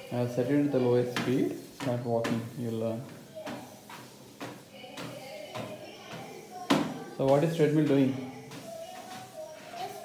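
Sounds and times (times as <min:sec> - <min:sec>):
footsteps on treadmill belt: 0:00.0 - 0:10.0.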